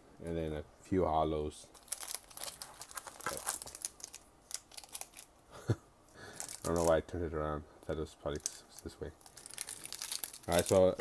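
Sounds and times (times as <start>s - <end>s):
foil wrappers crinkling: 1.7s - 5.3s, 6.2s - 7.0s, 8.3s - 11.0s.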